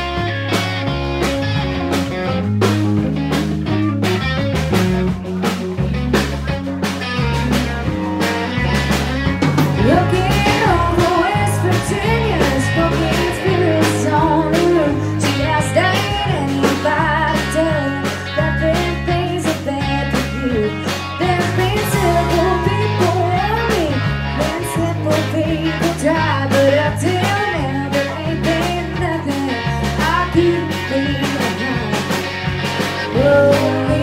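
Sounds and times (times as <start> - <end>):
electric bass: 0.0 - 34.0
electric guitar: 0.0 - 34.0
steady drum beat: 0.0 - 34.0
woman singing: 9.8 - 32.2, 33.1 - 34.0.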